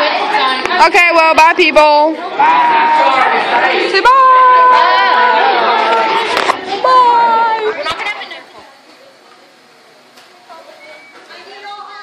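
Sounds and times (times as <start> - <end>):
girl shouting: 4.0 - 5.6.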